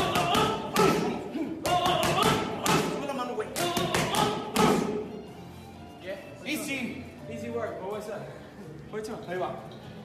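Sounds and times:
boxing gloves hitting mitts: 0:00.0 - 0:05.1
music: 0:00.0 - 0:10.0.

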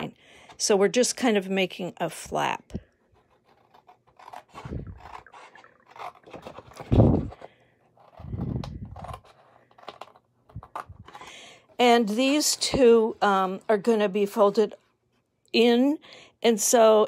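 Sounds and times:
scissors snipping cardstock: 0:03.2 - 0:07.4, 0:08.0 - 0:11.2.

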